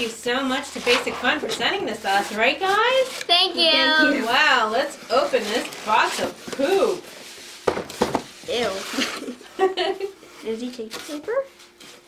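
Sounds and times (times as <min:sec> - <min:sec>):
cardboard scraping: 0:05.1 - 0:09.3.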